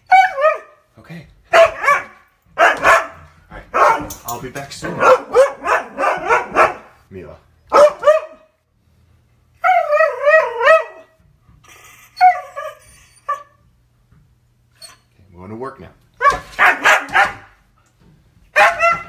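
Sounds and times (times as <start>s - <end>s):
husky barking yips: 0.1s - 0.8s, 1.5s - 4.2s, 4.8s - 6.9s, 7.7s - 8.5s, 9.6s - 11.1s, 16.2s - 17.6s, 18.6s - 19.0s
husky howling: 9.6s - 11.2s.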